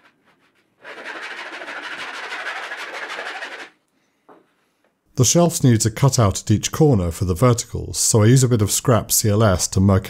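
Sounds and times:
hand tool scraping wood edge: 0:00.8 - 0:03.7.

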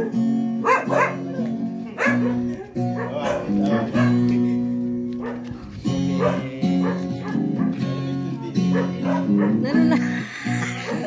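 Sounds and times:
dog barking: 0:00.0 - 0:04.6, 0:05.2 - 0:09.7, 0:10.8 - 0:11.0
acoustic guitar strummed: 0:00.0 - 0:11.0.

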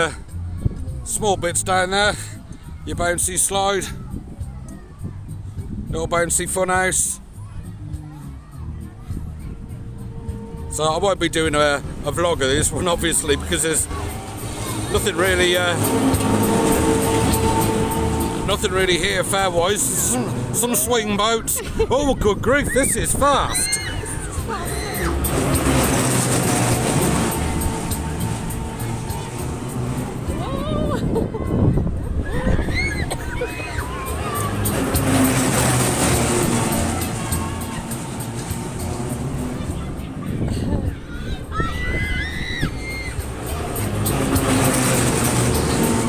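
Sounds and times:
music playing: 0:00.0 - 0:46.0
wind rushing over microphone: 0:00.3 - 0:06.6, 0:07.4 - 0:46.0
high pitch-bending tones: 0:09.2 - 0:21.5, 0:22.3 - 0:46.0.

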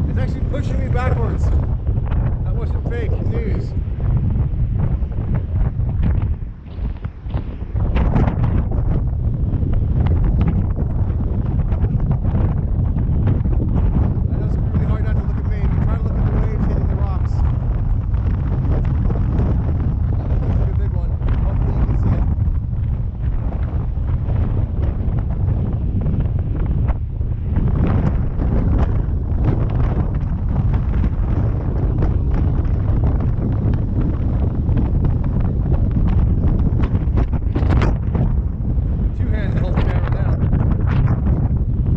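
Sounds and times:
strong wind buffeting microphone: 0:00.0 - 0:41.9.

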